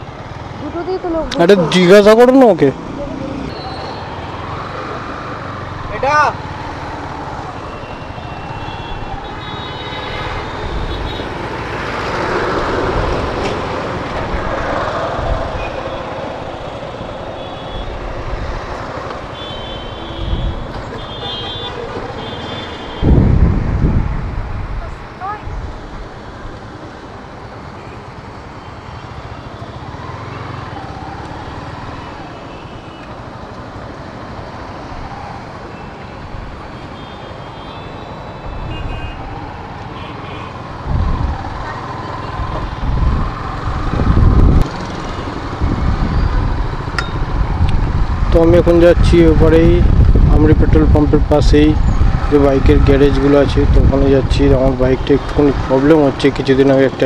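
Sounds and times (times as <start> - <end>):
buses and vehicles running: 0.0 - 57.0
horns tooting: 19.2 - 23.2.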